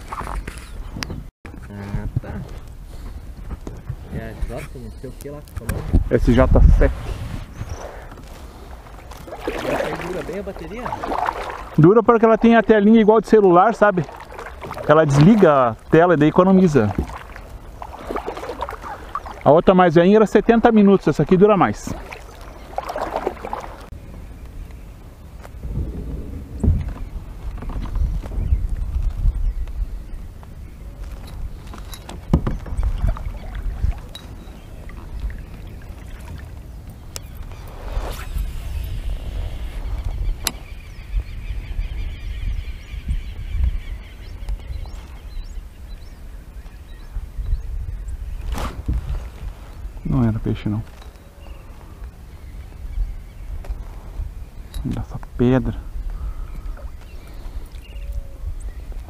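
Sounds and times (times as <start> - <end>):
paddle strokes in water: 0.0 - 0.8, 6.8 - 12.6, 13.4 - 19.8, 20.8 - 24.0, 31.0 - 40.7.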